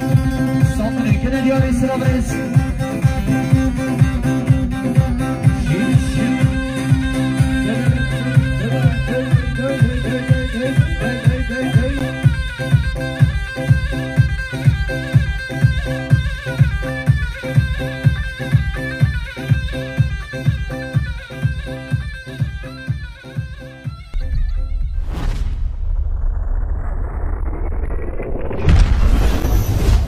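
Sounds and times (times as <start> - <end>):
reedy folk melody: 0.0 - 25.0
steady drum beat: 0.0 - 25.0
low rumbling effect: 24.2 - 30.0.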